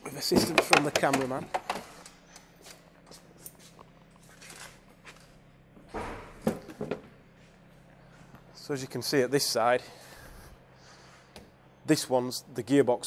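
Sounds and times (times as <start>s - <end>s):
steady low hum: 0.0s - 13.0s
plastic bumper cover clicks and rustling: 0.4s - 1.9s.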